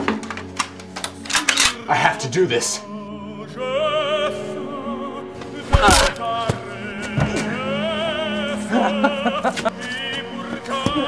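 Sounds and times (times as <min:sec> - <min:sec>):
faint opera music: 0:00.0 - 0:11.0.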